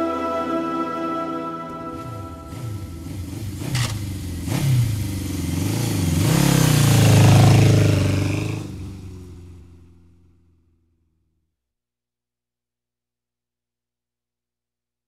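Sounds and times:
motorcycle engine revving: 0:02.0 - 0:10.9
sharp clacks: 0:03.6 - 0:04.1.

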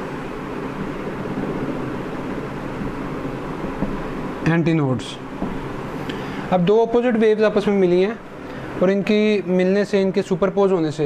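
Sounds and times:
steady hum and hiss: 0:00.0 - 0:11.0.

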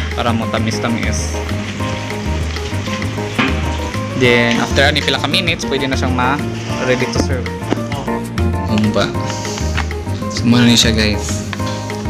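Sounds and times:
soda pouring in a stream: 0:00.0 - 0:07.7
background music with bass line: 0:00.0 - 0:12.0
stew sizzling and bubbling: 0:00.0 - 0:12.0.

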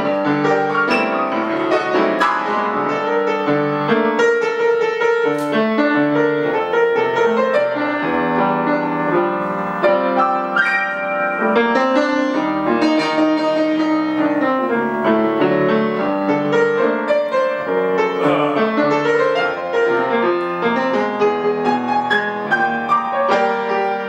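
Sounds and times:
solo grand piano: 0:00.0 - 0:24.0.

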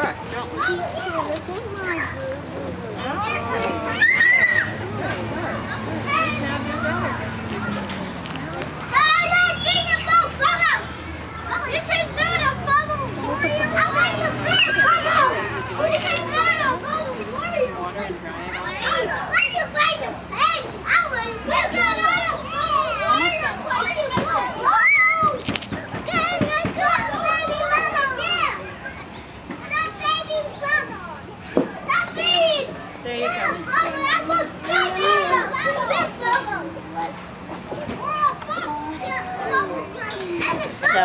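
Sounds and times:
young children shouting and squealing: 0:00.5 - 0:07.8, 0:08.8 - 0:41.0.

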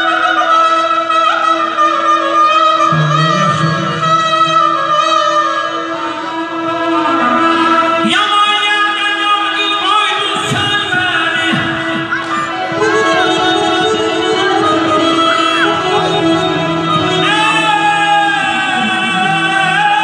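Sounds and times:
man singing: 0:00.0 - 0:20.0
button accordion melody over drone: 0:02.9 - 0:05.6.

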